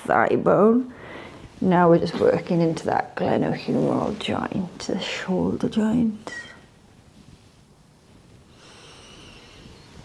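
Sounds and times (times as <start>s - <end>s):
soft breath: 0.9s - 1.6s, 7.2s - 10.0s.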